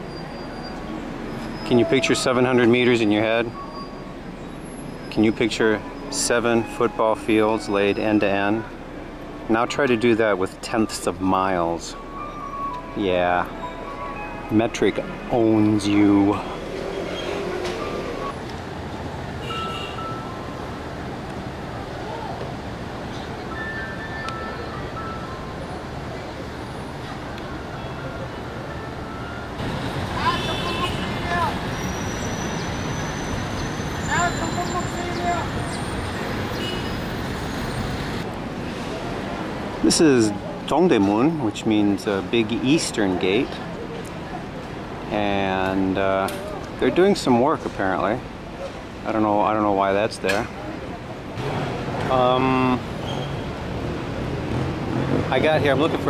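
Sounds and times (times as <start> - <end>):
city road traffic: 0.0 - 56.0.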